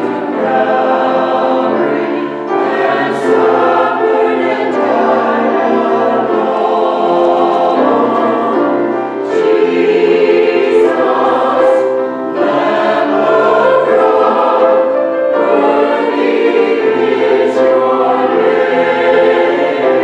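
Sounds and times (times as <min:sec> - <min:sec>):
mixed choir singing sacred music: 0:00.0 - 0:20.0.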